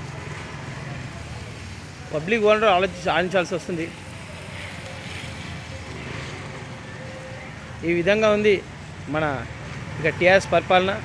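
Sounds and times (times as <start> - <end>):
motor scooters running: 0.0 - 11.0.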